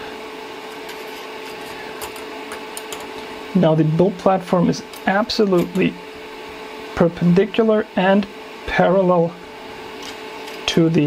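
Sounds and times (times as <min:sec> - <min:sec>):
small cooling fan whirring: 0:00.0 - 0:11.0.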